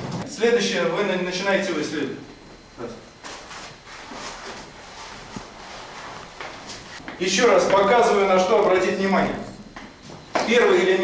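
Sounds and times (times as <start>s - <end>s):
soft scuffs: 3.2s - 7.2s.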